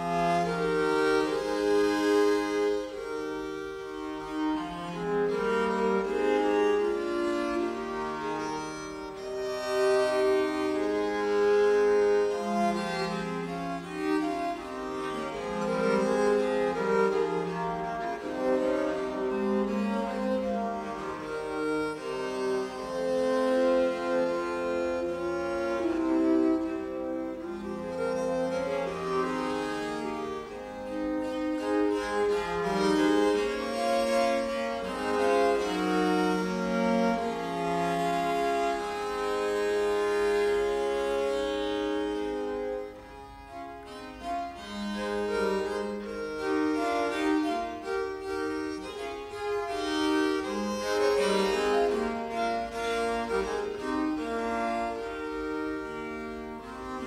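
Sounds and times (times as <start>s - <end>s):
viols playing: 0.0s - 57.0s.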